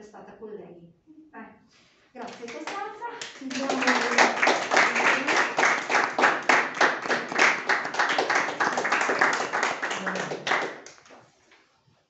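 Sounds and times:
people clapping: 2.2s - 11.2s.

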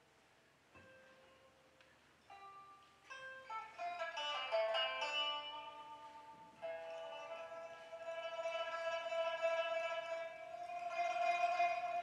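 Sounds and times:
plucked lute notes: 2.3s - 12.0s.

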